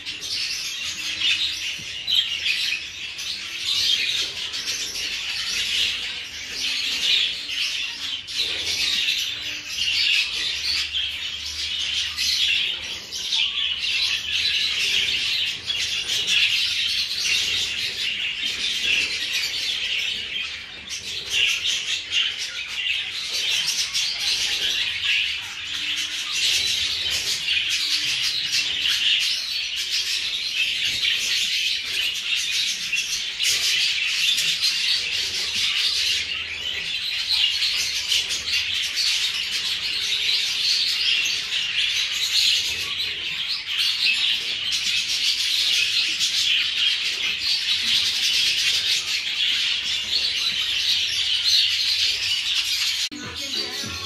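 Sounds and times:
parrots chirping and chattering: 0.0s - 54.0s.

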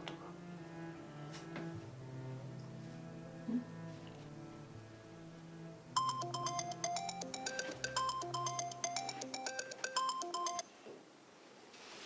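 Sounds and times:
phone ringtone beeping melody: 6.0s - 10.7s.

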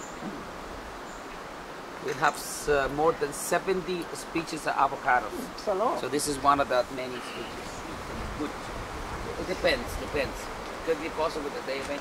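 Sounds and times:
hiss of background noise: 0.0s - 12.0s.

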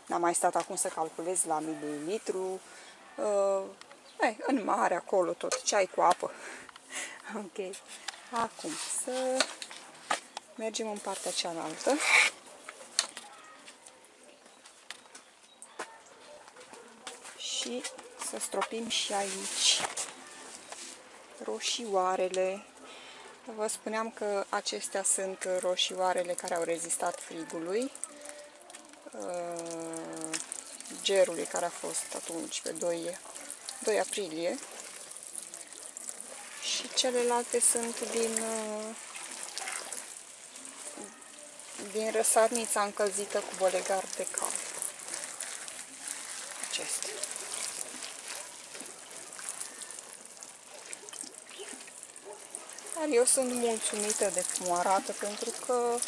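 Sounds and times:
water sprinkling from watering can: 4.7s - 13.9s, 17.1s - 22.6s, 23.6s - 56.0s.

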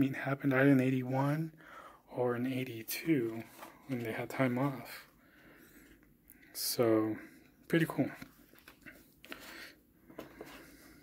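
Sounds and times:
paper pages rustling: 3.2s - 4.2s, 8.1s - 11.0s.

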